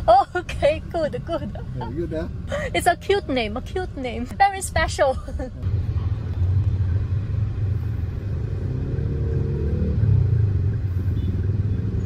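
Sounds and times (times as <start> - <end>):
engine and road rumble: 0.0 - 12.0
engine revving: 8.0 - 12.0.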